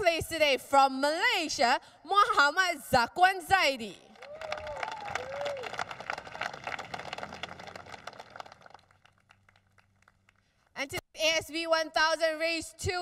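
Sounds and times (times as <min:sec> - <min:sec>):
audience applauding: 0:04.2 - 0:10.4.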